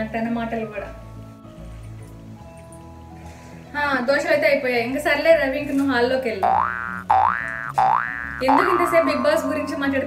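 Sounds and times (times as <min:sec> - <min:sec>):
cartoon boing sound effect: 0:06.4 - 0:10.0
woman talking: 0:08.4 - 0:10.0.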